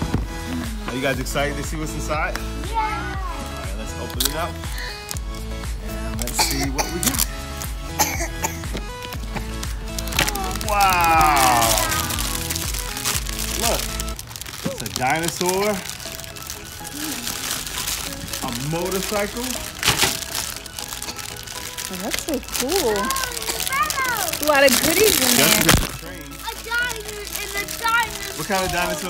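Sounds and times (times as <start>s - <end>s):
background music: 0.0s - 29.0s
plastic bags crinkling: 4.0s - 5.4s, 6.2s - 29.0s.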